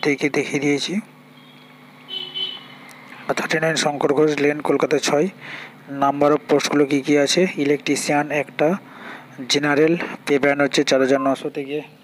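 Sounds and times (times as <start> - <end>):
person speaking: 3.1 - 12.0.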